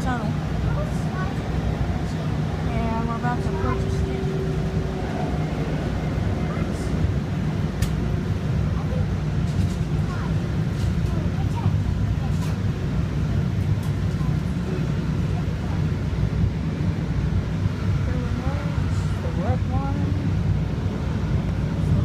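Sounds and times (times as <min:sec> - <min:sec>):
faint voices: 0:00.0 - 0:07.6
train rumble from inside: 0:00.0 - 0:22.0.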